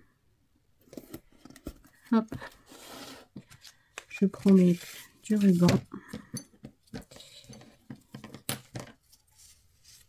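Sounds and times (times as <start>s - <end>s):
papery scrape: 2.4s - 3.7s, 4.3s - 5.7s, 9.2s - 10.0s.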